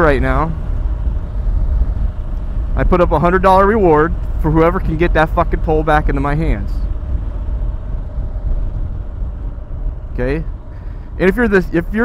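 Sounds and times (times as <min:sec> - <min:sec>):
motorcycle engine rumble: 0:00.0 - 0:12.0
wind buffeting microphone: 0:00.0 - 0:12.0.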